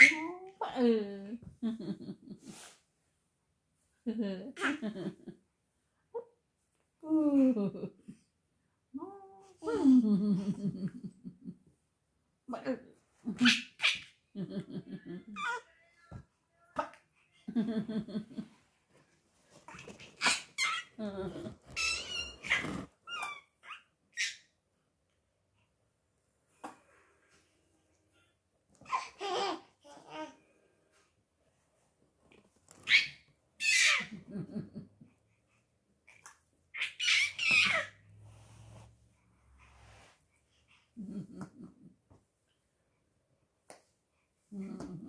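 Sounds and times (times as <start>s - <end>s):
baby squealing and laughing: 0.0s - 0.4s, 13.4s - 14.2s, 20.0s - 21.0s, 21.7s - 24.5s, 32.8s - 34.2s, 36.7s - 38.0s.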